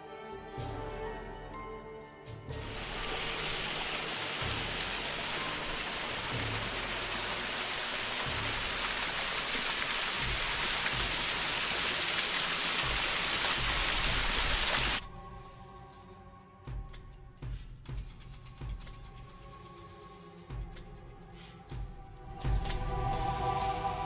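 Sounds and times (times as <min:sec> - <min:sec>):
waterfall rushing and splashing: 0:02.6 - 0:15.0.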